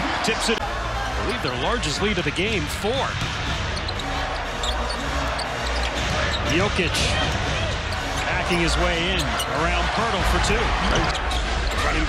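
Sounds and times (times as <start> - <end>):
crowd din: 0.0 - 12.0.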